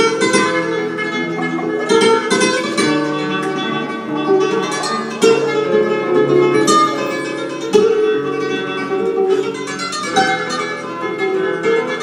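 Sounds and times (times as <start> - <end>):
flamenco guitar melodic runs: 0.0 - 12.0
sharp guitar chords: 0.0 - 12.0.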